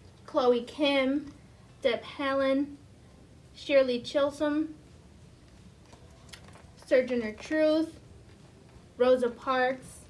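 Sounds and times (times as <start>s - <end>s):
woman speaking: 0.3s - 2.8s, 3.6s - 4.8s, 6.8s - 8.0s, 9.0s - 10.0s.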